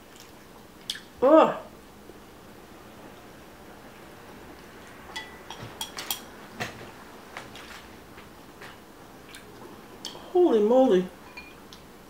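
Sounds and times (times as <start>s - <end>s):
chopsticks clinking on glass bowls: 5.2s - 6.3s.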